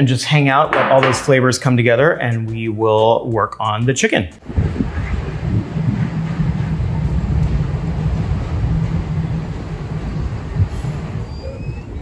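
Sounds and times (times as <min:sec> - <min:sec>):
heavy engine hum: 0:04.4 - 0:12.0
traffic rumble: 0:04.4 - 0:12.0.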